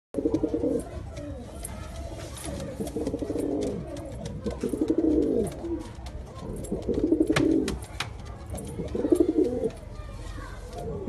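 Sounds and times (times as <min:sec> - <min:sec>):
pigeon cooing: 0:00.2 - 0:01.7, 0:02.5 - 0:07.8, 0:08.5 - 0:09.8.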